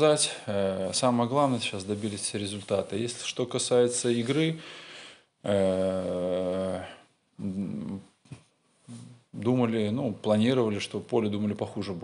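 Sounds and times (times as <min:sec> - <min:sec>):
man speaking: 0:00.0 - 0:04.7, 0:05.4 - 0:08.2, 0:08.9 - 0:12.0.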